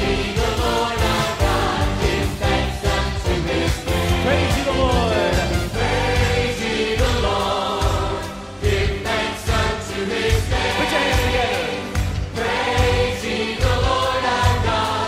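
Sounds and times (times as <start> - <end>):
band accompaniment with steady beat: 0.0 - 15.0
choir singing worship song: 0.0 - 15.0.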